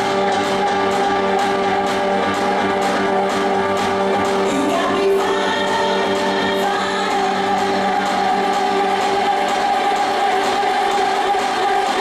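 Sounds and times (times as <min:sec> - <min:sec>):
dance music with sung vocals: 0:00.0 - 0:12.0.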